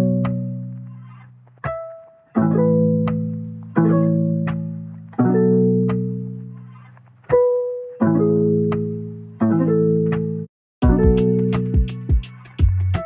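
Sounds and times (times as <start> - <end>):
plucked chords ringing: 1.7 - 6.8, 7.4 - 13.0.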